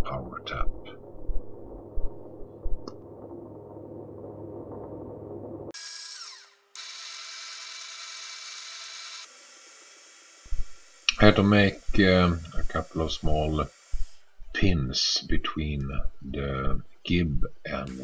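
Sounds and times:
thin high hiss: 9.3 - 14.4.

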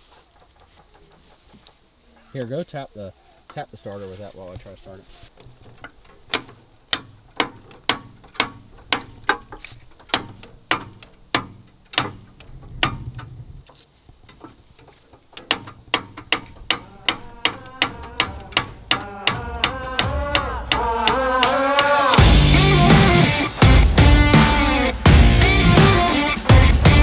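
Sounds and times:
metal tool tapping on metal: 5.8 - 13.3, 14.3 - 22.0
music: 18.8 - 27.0.

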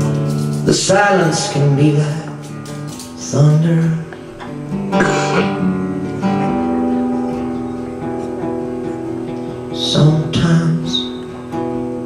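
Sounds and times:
strummed guitar chords: 0.0 - 12.0.

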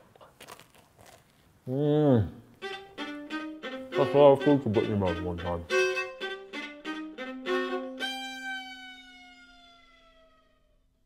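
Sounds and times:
fiddle long held note: 2.6 - 10.6.

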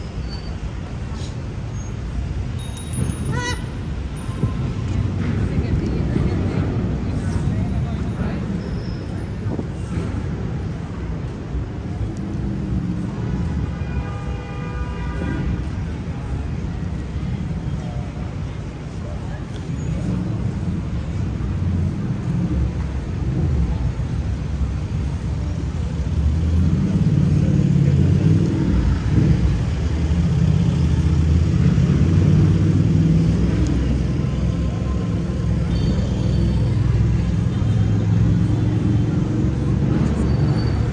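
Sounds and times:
indistinct voices of passers-by: 0.0 - 40.9
traffic engines running: 0.0 - 40.9.

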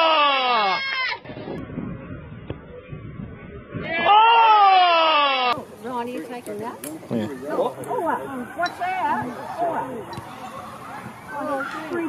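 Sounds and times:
people calling out and talking: 2.6 - 12.0.

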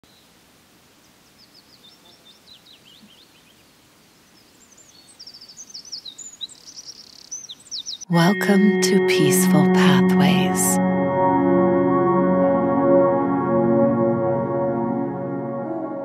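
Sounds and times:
faint steady hiss: 0.0 - 7.3
songbirds chirping and singing: 4.6 - 8.1.

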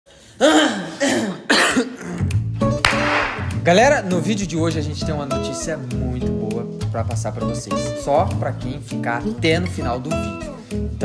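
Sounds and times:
woman coughing: 0.4 - 2.2.

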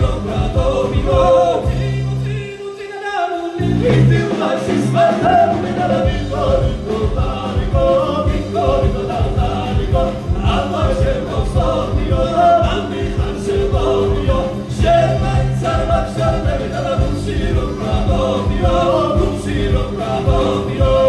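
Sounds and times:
folk band playing live: 0.0 - 2.5, 3.6 - 21.0
voices singing together: 0.0 - 21.0.

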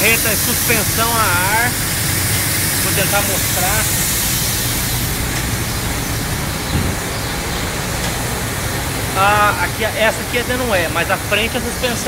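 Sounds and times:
low machinery hum: 0.0 - 12.0
low thump: 6.7 - 7.1.

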